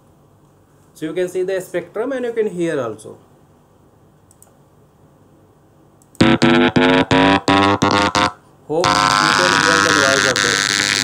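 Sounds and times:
electronic chirp tone: 0:06.2 - 0:11.0.

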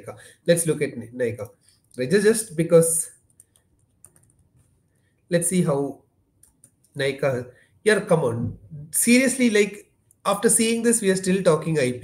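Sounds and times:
keyboard keystrokes: 0:03.3 - 0:04.4.

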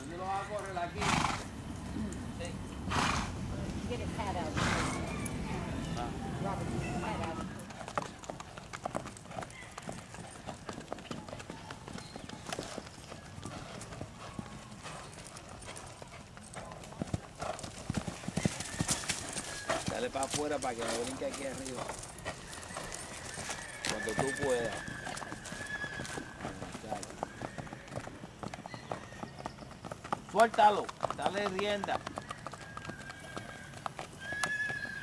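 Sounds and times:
horse whinnying: 0:00.9 - 0:01.5, 0:02.9 - 0:03.3, 0:22.3 - 0:28.1, 0:31.8 - 0:35.0
horse hooves beating rapidly: 0:06.0 - 0:35.0.

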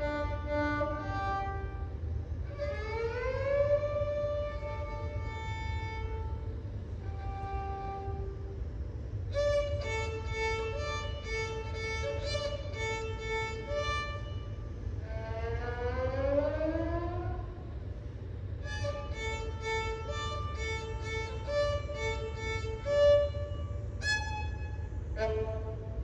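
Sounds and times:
solo violin bowed note: 0:00.0 - 0:08.6, 0:09.3 - 0:17.7, 0:18.6 - 0:26.0.

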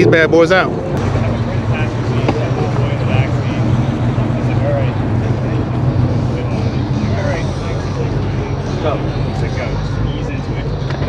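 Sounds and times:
people chattering: 0:00.0 - 0:11.0
car engine idling: 0:00.1 - 0:11.0.

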